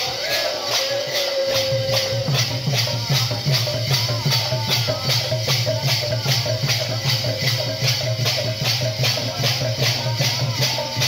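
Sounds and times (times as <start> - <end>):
brass hand cymbals clashing: 0.0 - 11.0
barrel drum: 1.0 - 11.0.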